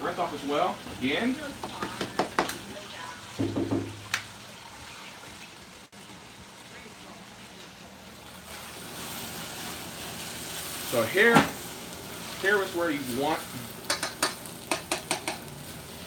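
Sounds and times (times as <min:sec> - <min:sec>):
faucet water running into sink: 0:00.0 - 0:05.9.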